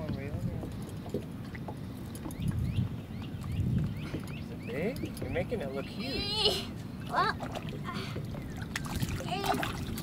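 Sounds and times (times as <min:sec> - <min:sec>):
water slapping against boat hull: 0:07.0 - 0:10.0.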